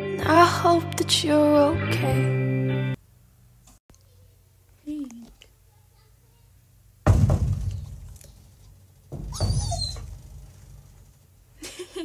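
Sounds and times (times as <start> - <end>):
heavy thump: 7.0 - 11.2
knocking and rustling: 7.0 - 11.4
high squeaky sliding sound: 9.2 - 10.3.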